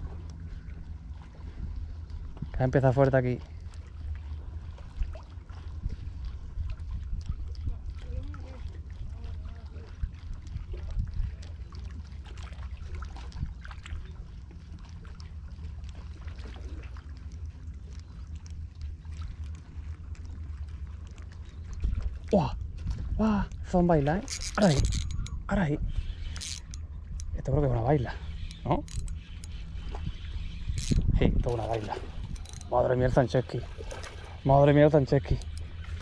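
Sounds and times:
wind rumbling on microphone: 0:00.0 - 0:02.8, 0:03.9 - 0:14.2, 0:21.4 - 0:36.0
fishing reel clicking: 0:24.2 - 0:33.2, 0:33.9 - 0:36.0.

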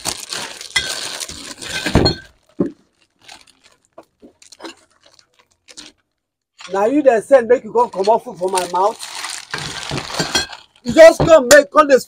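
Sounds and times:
plastic bag rustling: 0:00.0 - 0:07.0, 0:07.7 - 0:11.2
glass bottles clinking: 0:00.6 - 0:02.8, 0:09.5 - 0:11.4.

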